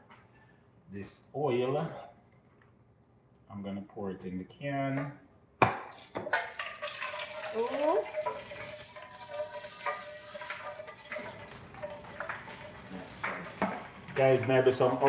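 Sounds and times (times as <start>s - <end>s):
oil pouring into metal can: 6.4s - 15.0s.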